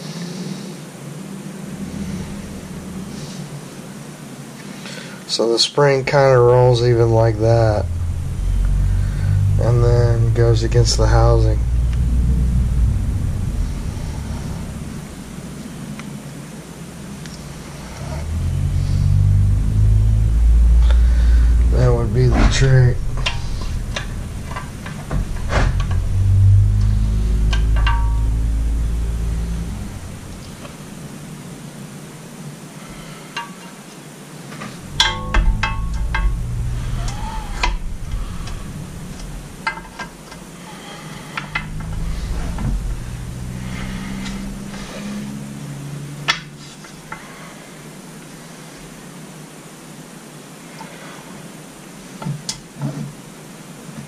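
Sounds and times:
low handling bumps: 0:01.6 - 0:03.6, 0:06.1 - 0:31.8, 0:34.6 - 0:40.2, 0:41.3 - 0:46.6.

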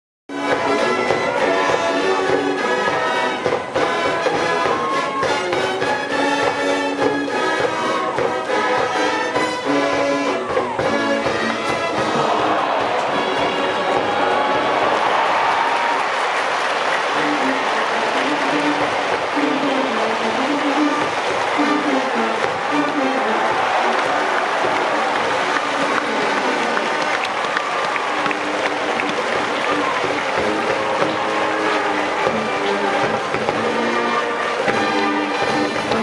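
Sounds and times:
brass band playing: 0:00.3 - 0:36.0
crowd cheering and applauding: 0:00.3 - 0:36.0.

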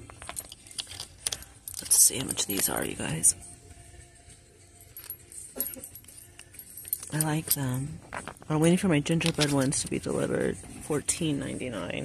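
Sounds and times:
faint background music: 0:00.0 - 0:12.0
metallic clinks of chain bracelet: 0:00.2 - 0:03.1, 0:04.8 - 0:08.0.

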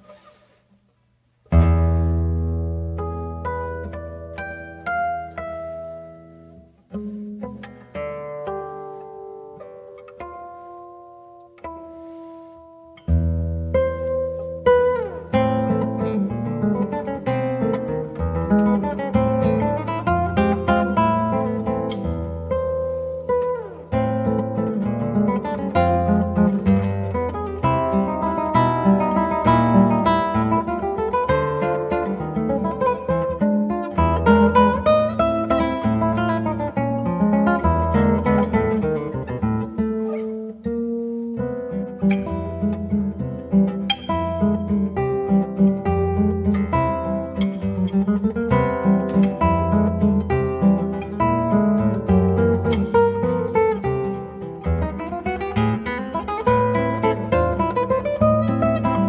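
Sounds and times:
fingerstyle classical guitar: 0:00.0 - 0:59.0.

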